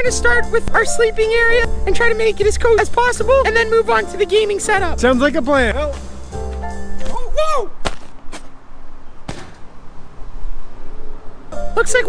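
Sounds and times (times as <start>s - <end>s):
sleeping bag thudding on roof: 9.3s - 9.7s.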